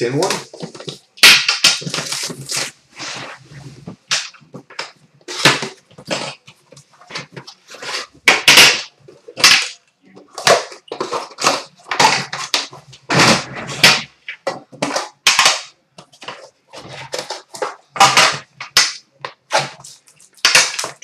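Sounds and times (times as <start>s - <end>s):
plastic wrapping crackling and tearing: 0.1s - 9.8s, 13.4s - 21.0s.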